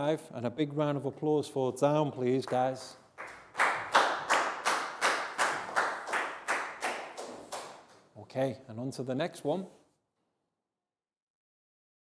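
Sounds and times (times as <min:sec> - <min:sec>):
people clapping in rhythm: 0:02.4 - 0:08.1.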